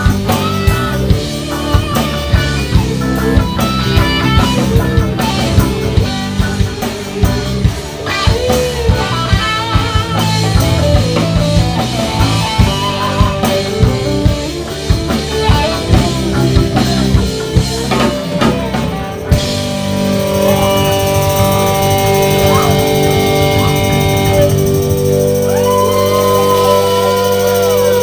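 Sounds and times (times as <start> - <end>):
bass: 0.0 - 28.0
drum kit steady beat: 0.0 - 28.0
electric guitars: 0.0 - 28.0.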